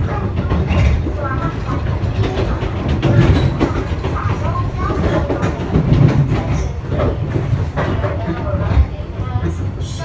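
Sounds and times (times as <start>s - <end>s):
train rumble inside carriage: 0.0s - 10.0s
wheels clicking on rails: 0.0s - 10.0s.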